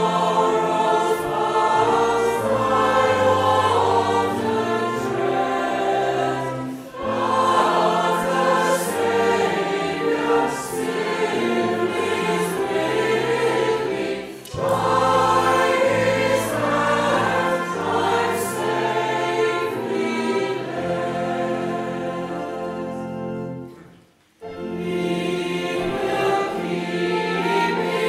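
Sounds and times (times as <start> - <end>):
choir singing a hymn: 0.0 - 28.0.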